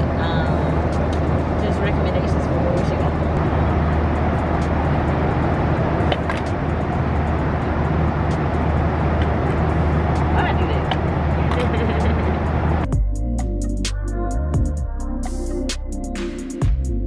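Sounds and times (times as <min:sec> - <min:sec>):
airliner cabin drone: 0:00.0 - 0:13.7.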